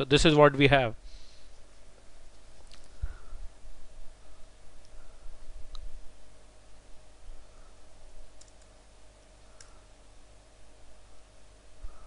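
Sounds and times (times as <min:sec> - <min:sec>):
low background hum: 0:00.0 - 0:12.0
computer keys and mouse clicks: 0:08.4 - 0:08.8.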